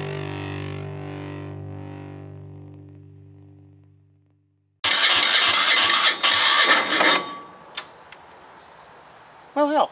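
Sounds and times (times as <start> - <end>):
small diesel engine turning over: 4.8 - 7.6.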